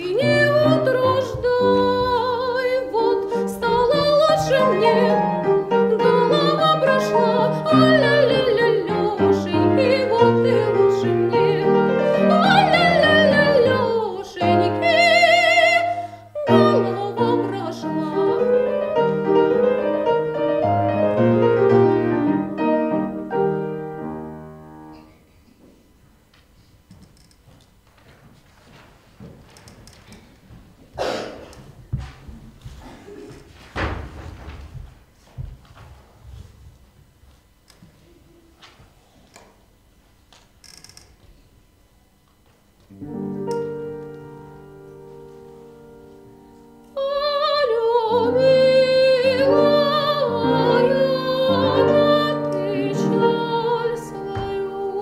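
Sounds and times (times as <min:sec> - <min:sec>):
grand piano chords: 0:00.0 - 0:25.4, 0:42.9 - 0:55.0.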